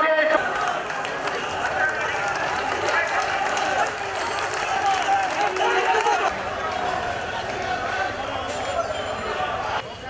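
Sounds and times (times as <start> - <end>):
marching crowd shouting: 0.3 - 9.8.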